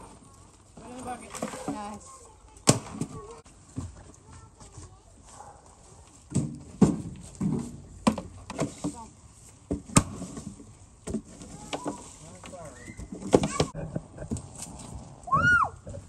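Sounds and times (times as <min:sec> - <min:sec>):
child's voice: 0:01.8 - 0:03.5, 0:04.1 - 0:06.1, 0:11.4 - 0:12.2, 0:13.4 - 0:13.8
leaves rustling: 0:08.6 - 0:13.4.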